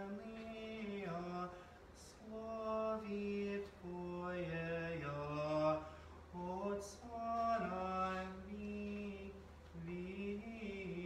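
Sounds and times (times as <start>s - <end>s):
unaccompanied liturgical chant: 0.0s - 11.0s.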